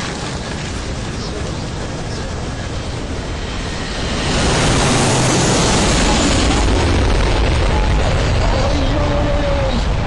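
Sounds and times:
strong wind on microphone: 0:00.0 - 0:10.0.

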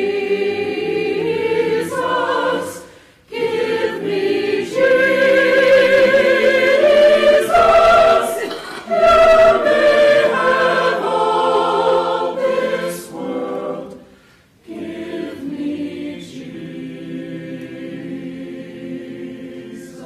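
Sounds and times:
choir singing sustained chords: 0:00.0 - 0:20.0.

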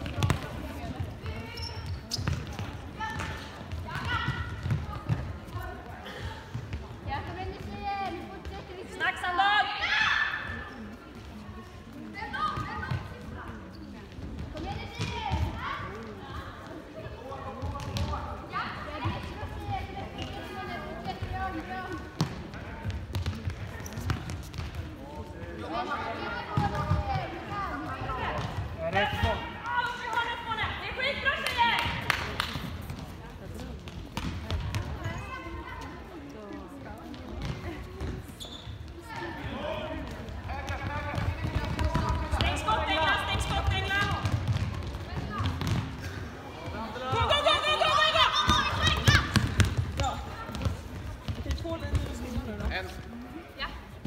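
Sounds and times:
ball kicked and bouncing: 0:00.0 - 0:05.7, 0:22.2 - 0:24.9, 0:33.8 - 0:35.1, 0:39.2 - 0:42.7, 0:43.4 - 0:46.2, 0:48.5 - 0:52.8
voices calling out in a hall: 0:00.0 - 0:54.0.

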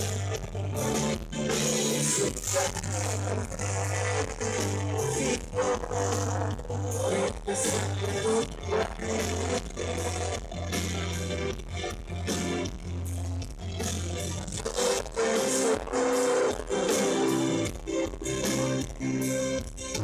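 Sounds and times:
guitars: 0:00.0 - 0:20.0
live band playing: 0:00.0 - 0:20.0.

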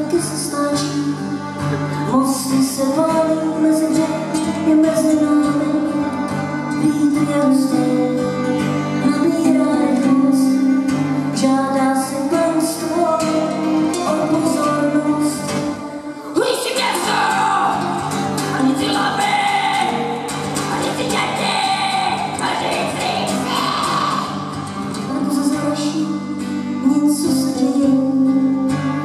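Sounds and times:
acoustic folk band playing: 0:00.0 - 0:29.0.

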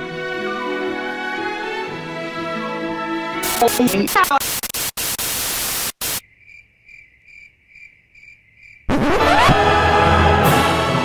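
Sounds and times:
tv static hiss: 0:03.4 - 0:06.2
crickets chirping: 0:06.0 - 0:08.9.

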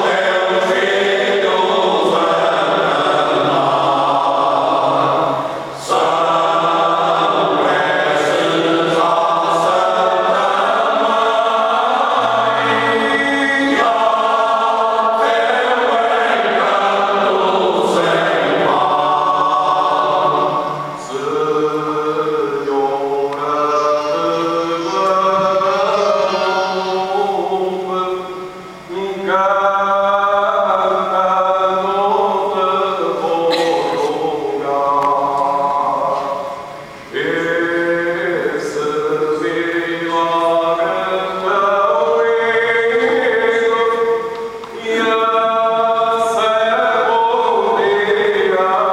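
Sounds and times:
male choir singing unaccompanied: 0:00.0 - 0:48.9.

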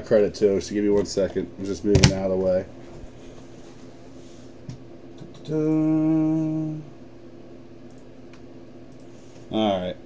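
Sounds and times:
low steady background hum: 0:00.0 - 0:10.0
man humming a held note: 0:05.4 - 0:07.0.

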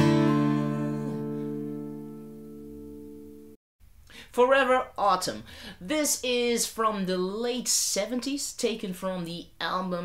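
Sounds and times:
acoustic guitar chord ringing: 0:00.0 - 0:03.6.

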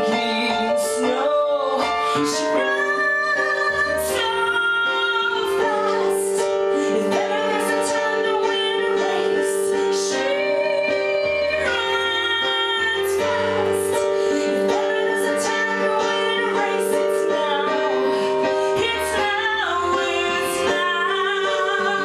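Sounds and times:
electric keyboard chord: 0:00.0 - 0:22.0.

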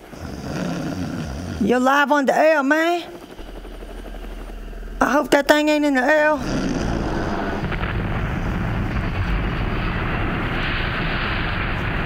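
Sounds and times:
helicopter rotor chop: 0:00.0 - 0:11.2
low rumble: 0:03.1 - 0:12.0.

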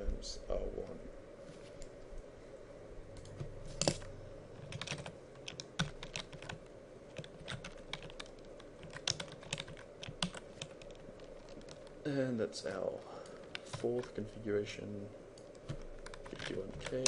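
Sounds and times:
computer keyboard typing: 0:03.2 - 0:12.0, 0:15.4 - 0:17.0.

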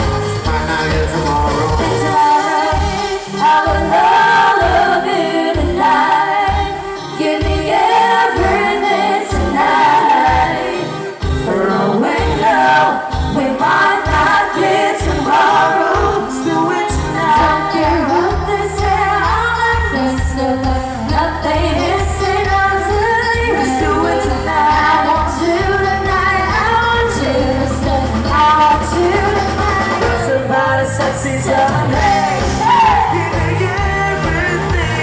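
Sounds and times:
bass guitar: 0:00.0 - 0:35.0
electric guitar: 0:00.0 - 0:35.0
steady drum beat: 0:00.0 - 0:35.0
voices singing: 0:00.0 - 0:35.0.

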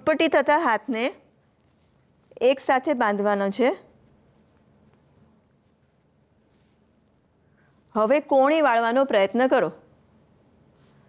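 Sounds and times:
string rustling and scratching: 0:01.2 - 0:02.9, 0:03.6 - 0:07.6.

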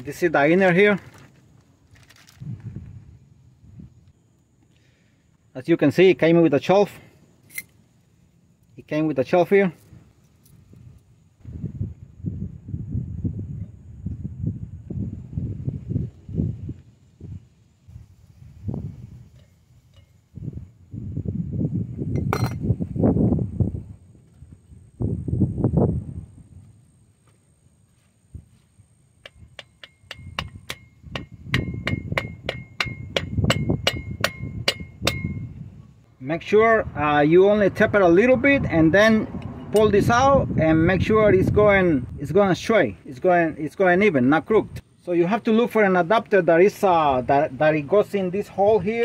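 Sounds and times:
hammer tapping steel: 0:29.2 - 0:35.4.

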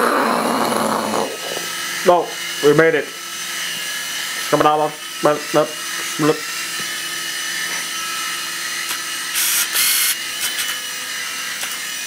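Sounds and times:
toy helicopter rotors whirring: 0:00.0 - 0:12.0.

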